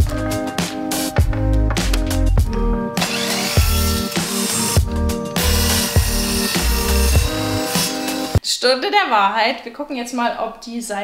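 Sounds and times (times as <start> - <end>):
background music with steady beat: 0.0 - 8.4
electric mitre saw cutting wood: 3.0 - 8.4.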